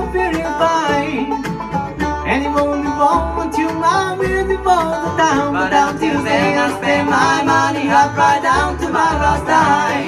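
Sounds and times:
acoustic guitar: 0.0 - 10.0
banjo picking: 0.0 - 10.0
upright bass: 0.0 - 10.0.

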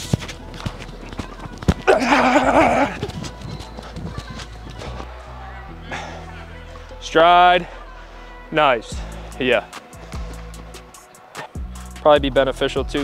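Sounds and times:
footsteps on artificial turf: 0.0 - 5.4, 8.6 - 11.0
background music: 0.0 - 13.0.

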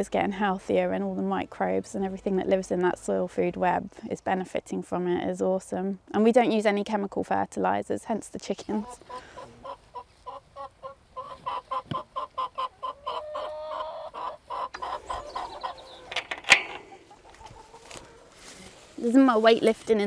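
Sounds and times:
hens clucking: 8.6 - 18.9.

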